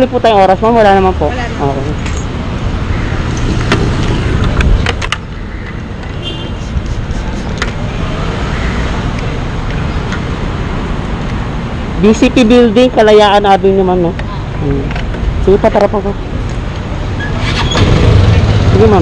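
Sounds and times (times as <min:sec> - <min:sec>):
low rumble of traffic: 0:00.0 - 0:19.0.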